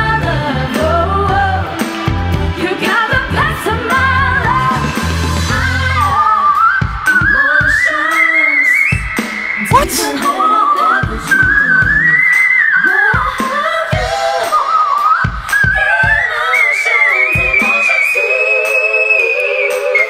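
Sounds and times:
woman singing high whistle notes: 0:06.0 - 0:20.0
band playing: 0:09.6 - 0:11.3.

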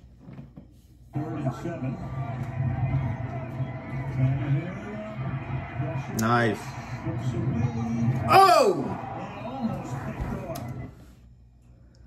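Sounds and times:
stadium crowd noise: 0:01.2 - 0:11.0.

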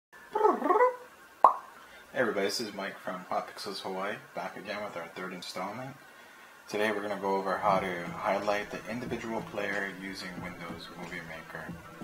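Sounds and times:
sharp plop with falling pitch: 0:01.4 - 0:01.7.

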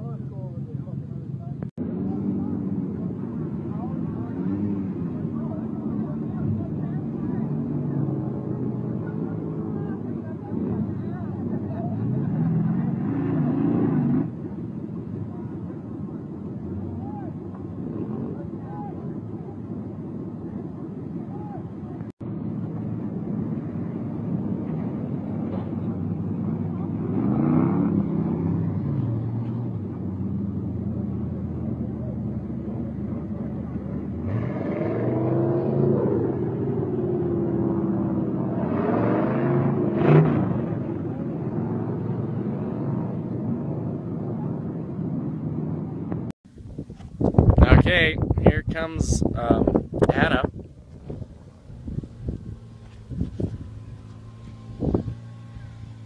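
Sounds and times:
truck engines revving: 0:00.0 - 0:46.4, 0:47.1 - 0:56.0.

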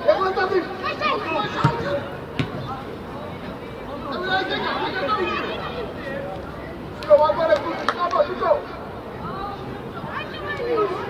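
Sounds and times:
voices calling out and shouting: 0:00.0 - 0:11.0.

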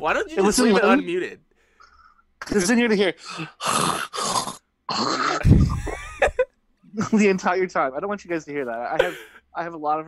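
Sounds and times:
men laughing: 0:05.4 - 0:07.2, 0:09.0 - 0:09.4.

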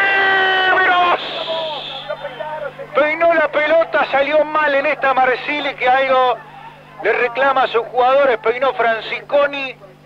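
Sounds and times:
spectators shouting: 0:00.0 - 0:02.7.

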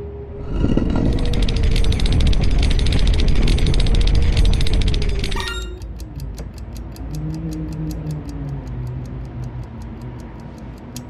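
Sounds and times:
mechanical low rumble: 0:00.0 - 0:11.0
rapid rattle: 0:00.5 - 0:07.2
quick ticking: 0:00.6 - 0:11.0.

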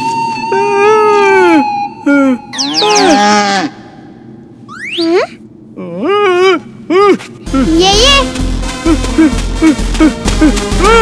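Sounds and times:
cartoon bull mooing: 0:02.6 - 0:03.8.

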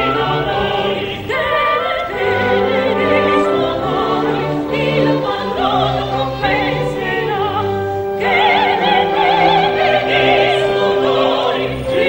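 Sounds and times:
chamber orchestra held bass notes: 0:00.0 - 0:12.0
women singing opera duet: 0:00.0 - 0:12.0.

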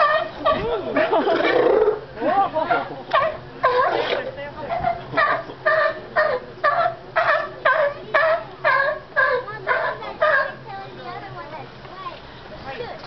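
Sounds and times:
sea lion barking: 0:00.0 - 0:00.6, 0:01.3 - 0:10.7.

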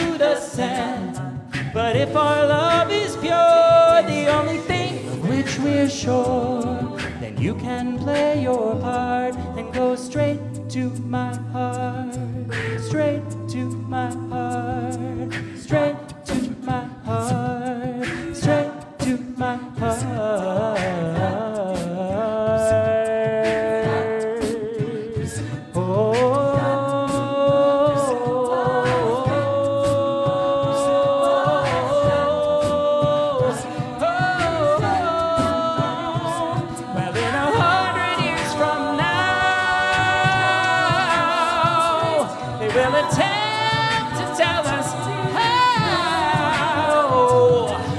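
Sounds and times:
ornamented upper vocal line: 0:00.0 - 0:47.9
vocal percussion beat: 0:00.0 - 0:47.9
sustained vocal chords: 0:26.4 - 0:47.9.

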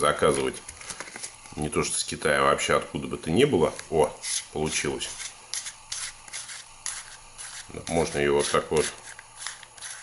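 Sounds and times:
plastic rubbing and scraping: 0:04.2 - 0:10.0.

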